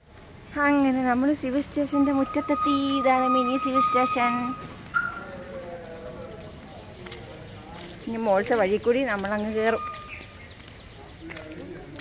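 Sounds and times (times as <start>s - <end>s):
low outdoor background: 0.0s - 12.0s.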